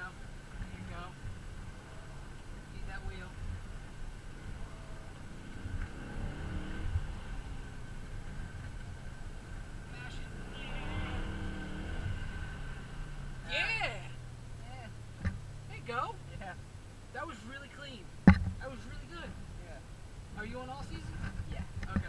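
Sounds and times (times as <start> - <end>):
car engine revving: 0.0 - 22.0.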